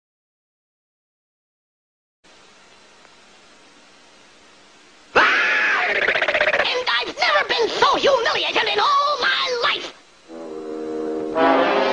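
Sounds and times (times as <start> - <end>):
cartoon duck voice exclaiming: 5.2 - 10.0
low horn-like note: 10.3 - 11.9.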